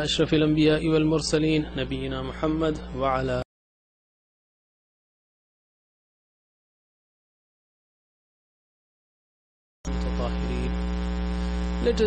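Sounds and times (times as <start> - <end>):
electrical mains hum: 0.0 - 3.4, 9.9 - 12.0
person speaking: 0.0 - 3.5, 9.9 - 10.9, 11.8 - 12.0.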